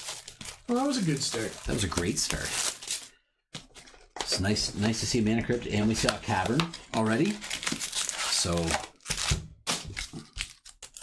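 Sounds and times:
packaging rustling: 0.0s - 5.0s, 5.7s - 11.0s.

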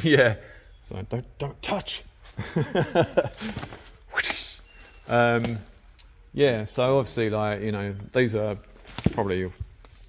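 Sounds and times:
man laughing: 2.4s - 3.8s.

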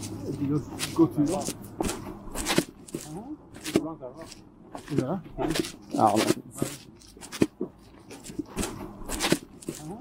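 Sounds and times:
footsteps on snow: 0.0s - 3.0s.

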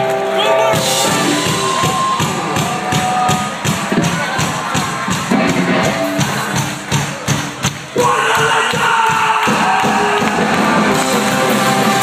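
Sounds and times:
crowd shouting: 0.0s - 6.7s, 7.9s - 12.0s
punk band playing loud: 0.0s - 12.0s
drum hits: 0.8s - 12.0s.

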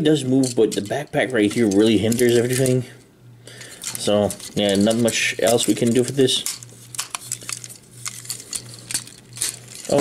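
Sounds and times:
plastic toy parts clicking: 3.8s - 10.0s.

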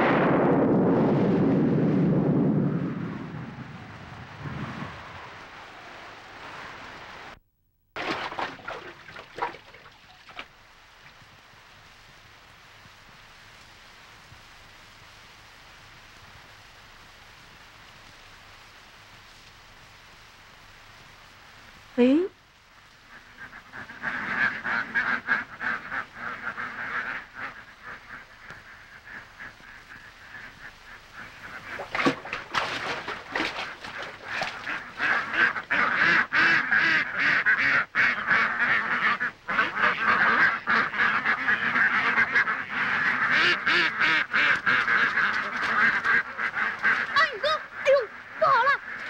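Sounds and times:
flock of ducks quacking: 22.9s - 49.0s.

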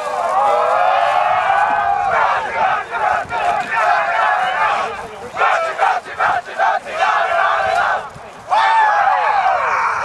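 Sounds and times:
group of players shouting: 0.2s - 10.0s.

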